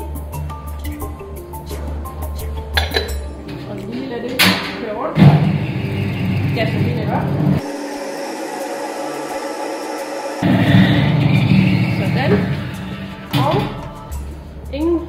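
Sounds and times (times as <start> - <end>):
mixer rumbling: 5.1 - 14.0.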